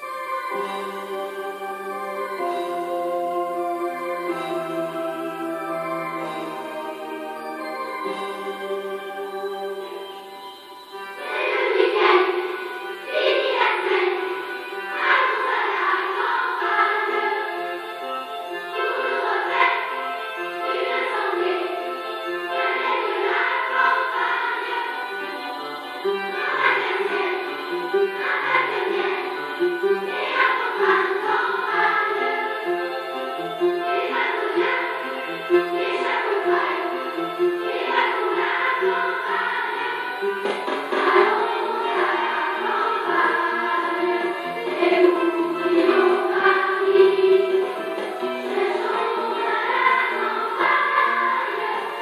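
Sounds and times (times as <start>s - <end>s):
children's choir singing: 0.0s - 52.0s
music: 0.0s - 52.0s.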